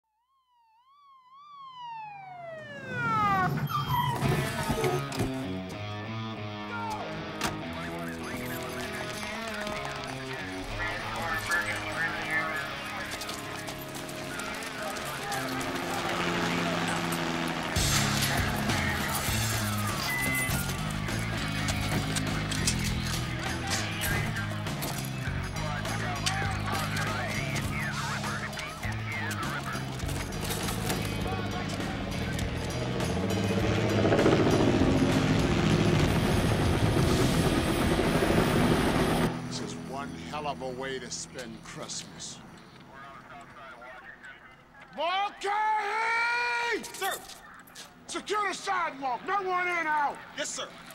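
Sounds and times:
helicopter rotor chopping: 1.8s - 5.6s, 7.6s - 43.3s
voices calling out: 2.6s - 33.5s, 39.0s - 50.9s.

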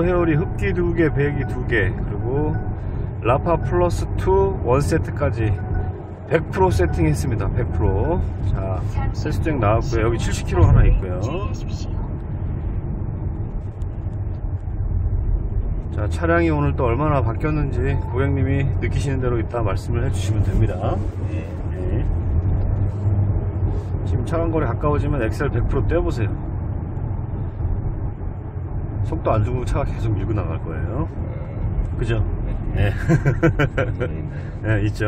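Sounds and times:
road and engine rumble in car cabin: 0.0s - 35.0s.

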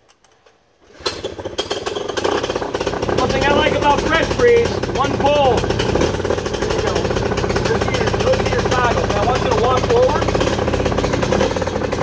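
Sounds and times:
engine idling: 1.1s - 12.0s.

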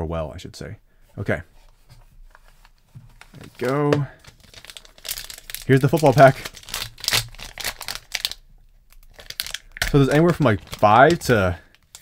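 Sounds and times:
foil wrapper crinkling and tearing: 3.2s - 12.0s.

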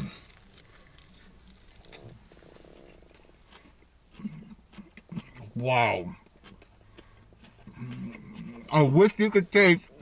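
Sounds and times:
person chewing: 0.0s - 10.0s.

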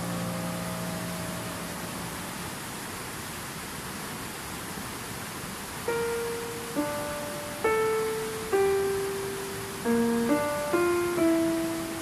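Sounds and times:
piano notes: 0.0s - 2.8s, 5.9s - 12.0s.

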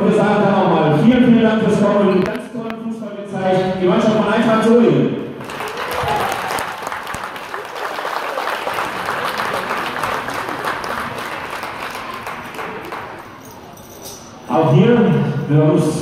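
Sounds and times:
audience applauding: 5.4s - 13.3s.

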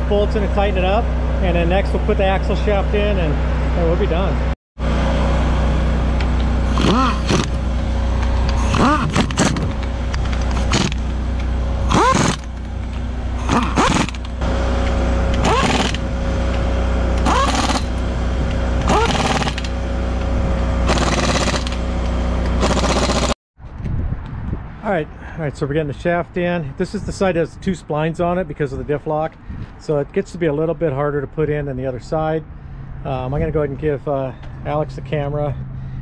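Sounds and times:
steady low hum: 0.0s - 23.4s
air impact wrench hammering: 6.2s - 23.4s.

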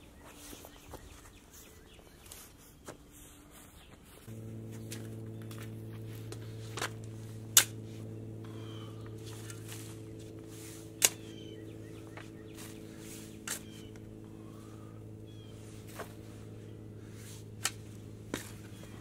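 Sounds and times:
low machine hum: 0.0s - 19.0s
shovel working soil: 4.3s - 19.0s
faint bird chirps: 8.5s - 9.7s, 11.1s - 15.7s.

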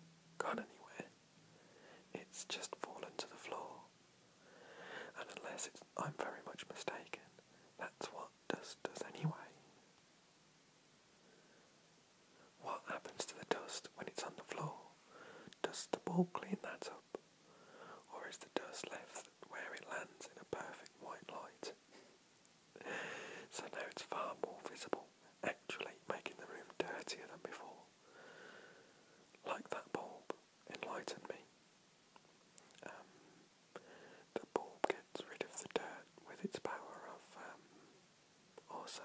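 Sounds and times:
person whispering: 0.4s - 1.2s, 2.1s - 3.9s, 5.1s - 9.6s, 12.6s - 15.0s, 15.6s - 17.2s, 18.0s - 21.8s, 22.8s - 27.9s, 29.4s - 31.5s, 32.6s - 33.2s, 34.3s - 37.8s, 38.6s - 39.0s.

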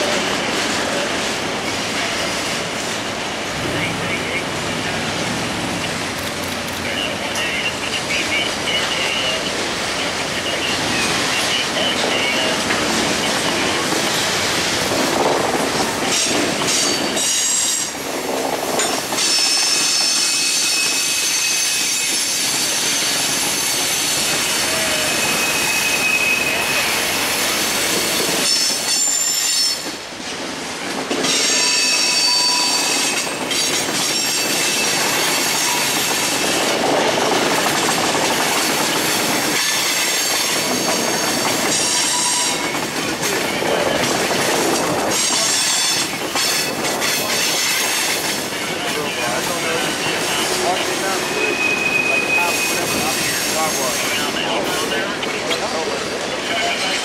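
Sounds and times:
freight train rumbling and clattering: 0.0s - 57.0s
wheel flanges squealing: 19.2s - 27.4s, 31.3s - 36.4s, 47.4s - 54.3s.

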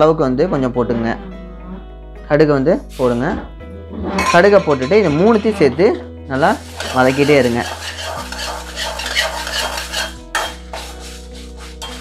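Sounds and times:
ladle scraping in a metal pan: 4.1s - 12.0s.

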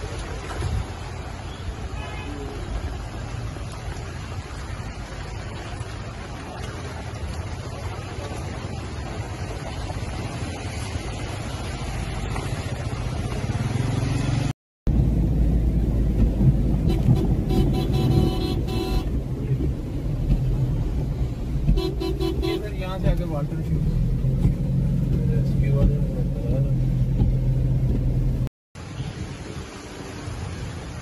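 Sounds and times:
car driving rumble: 0.0s - 31.0s
floodwater rushing: 0.0s - 31.0s
wind: 0.0s - 31.0s
car horns honking: 16.8s - 19.2s, 21.7s - 23.1s.

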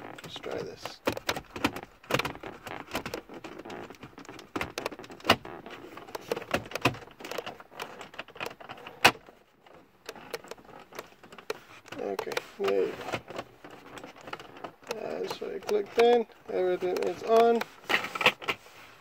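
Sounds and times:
plastic trim clicks and rattles: 0.1s - 18.6s.

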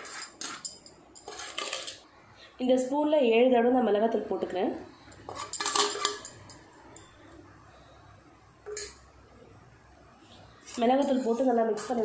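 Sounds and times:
spoon scraping metal plate: 0.0s - 2.0s, 5.1s - 7.2s, 10.6s - 12.0s.

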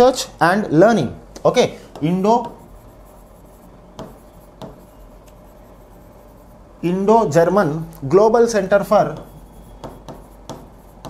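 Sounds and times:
stylus tapping on screen: 1.4s - 5.6s, 9.1s - 11.0s
stylus scratching on screen: 1.9s - 7.6s, 8.4s - 11.0s.

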